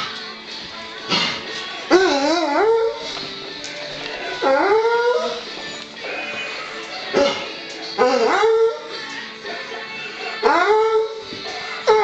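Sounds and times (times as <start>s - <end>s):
music from a radio: 0.0s - 12.0s
dog howling: 1.9s - 3.1s, 4.4s - 9.1s, 10.3s - 12.0s.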